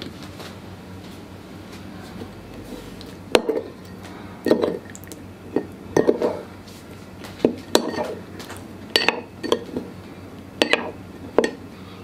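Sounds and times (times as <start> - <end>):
spoon stirring and clinking bowl: 5.5 - 6.4, 7.4 - 8.2, 8.9 - 9.8.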